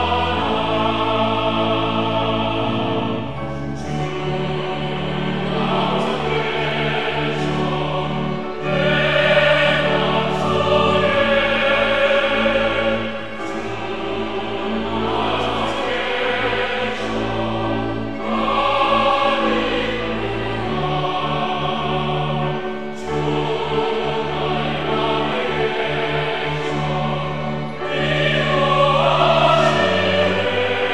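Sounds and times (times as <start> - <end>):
mixed choir singing: 0.0 - 30.9.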